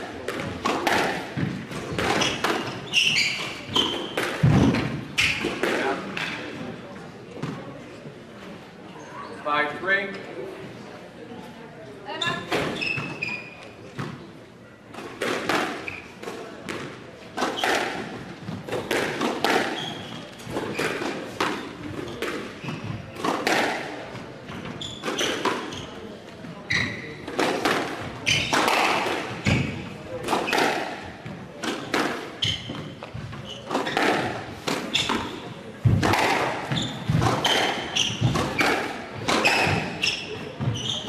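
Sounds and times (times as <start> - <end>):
shoes squeaking on wooden floor: 0.6 - 5.6, 12.1 - 14.1, 15.8 - 16.2, 17.4 - 23.3, 24.4 - 27.4, 28.0 - 31.5, 32.4 - 41.0
squash ball thuds: 3.8 - 6.4, 27.3 - 41.0.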